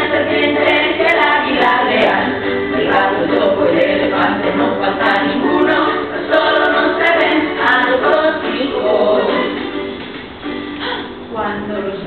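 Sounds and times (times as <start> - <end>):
children and adult singing: 0.0 - 10.0.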